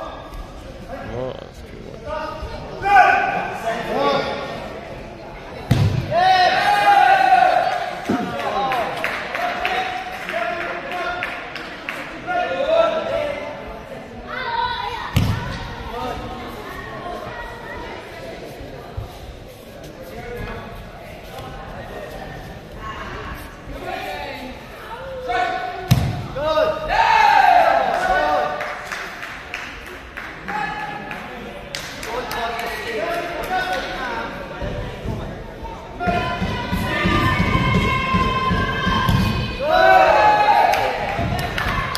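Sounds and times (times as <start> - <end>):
indistinct voices in echoing hall: 0.0 - 41.9.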